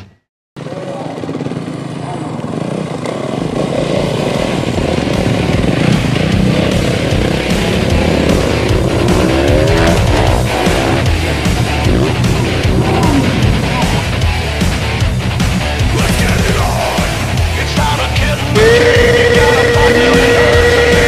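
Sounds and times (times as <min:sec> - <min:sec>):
dirt bike engines revving: 0:00.6 - 0:21.0.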